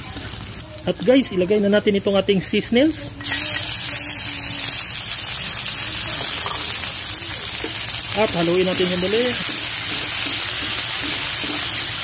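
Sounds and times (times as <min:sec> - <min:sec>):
food sizzling in hot oil: 0:00.0 - 0:12.0.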